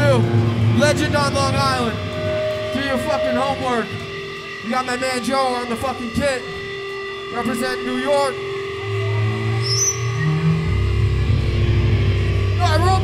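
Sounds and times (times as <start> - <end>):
voices: 0.0 - 9.7
amplified instruments holding low note: 0.0 - 13.0
amplifier hum: 0.0 - 13.0.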